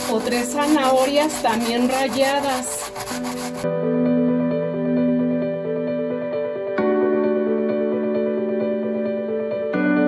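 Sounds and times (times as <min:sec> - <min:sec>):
potato rasping on plastic grater: 0:00.0 - 0:03.6
soft instrumental music: 0:00.0 - 0:10.0.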